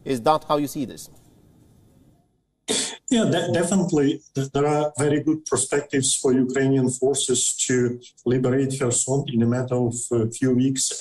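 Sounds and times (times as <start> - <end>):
man speaking: 0.0 - 1.1, 2.7 - 11.0
faint background hiss: 0.0 - 11.0
man's breathy vocal sound: 2.7 - 3.1.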